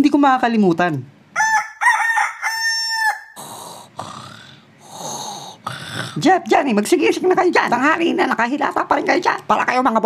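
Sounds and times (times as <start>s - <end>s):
rooster crowing: 1.3s - 3.5s.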